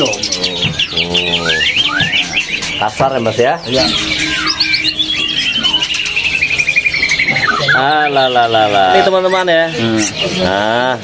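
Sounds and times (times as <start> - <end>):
songbirds chirping: 0.0 - 11.0
man humming: 0.4 - 1.6.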